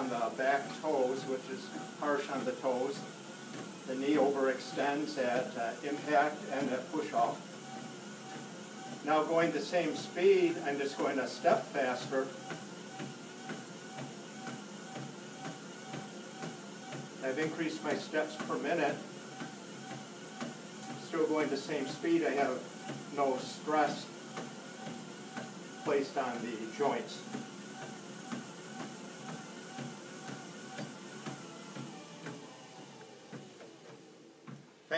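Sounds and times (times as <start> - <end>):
faint treadmill tone: 0.0 - 34.9
footsteps on treadmill belt: 0.0 - 34.9.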